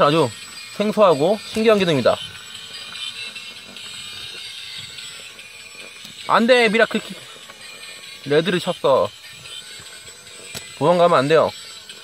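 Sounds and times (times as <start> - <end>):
toy truck motor whirring: 0.0 - 12.0.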